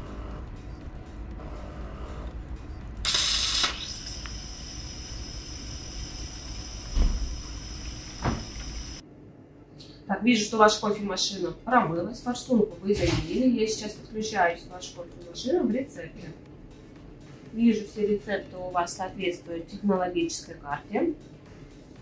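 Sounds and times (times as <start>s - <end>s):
coffee machine pump hum: 3.0s - 9.0s.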